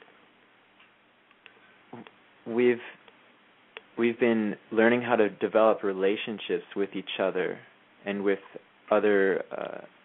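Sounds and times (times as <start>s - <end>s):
faint background hiss: 0.0s - 10.0s
soft clicks: 0.4s - 2.2s.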